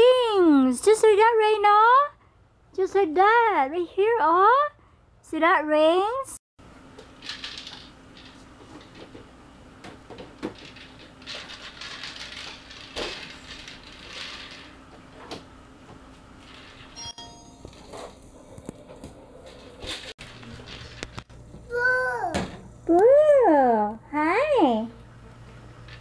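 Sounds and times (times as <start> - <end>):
plastic toys knocking and rattling: 7.0 - 15.4
brief electronic tone: 17.0 - 17.8.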